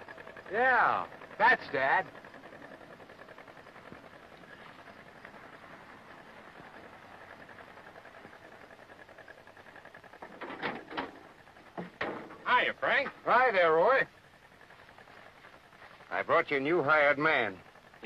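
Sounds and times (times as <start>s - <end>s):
film soundtrack hiss and hum: 0.0s - 18.0s.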